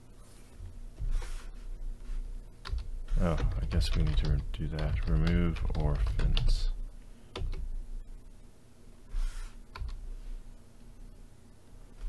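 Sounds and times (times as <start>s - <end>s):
typing on computer keyboard: 2.6s - 6.8s, 7.4s - 7.6s, 9.8s - 10.0s.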